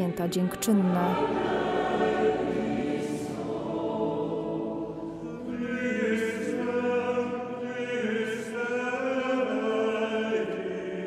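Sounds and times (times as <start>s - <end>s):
church choir singing: 0.0s - 11.0s.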